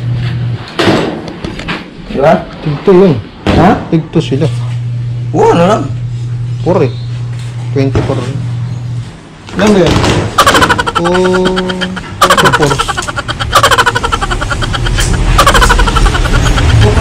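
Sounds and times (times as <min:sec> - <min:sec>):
man speaking: 0:10.9 - 0:13.0.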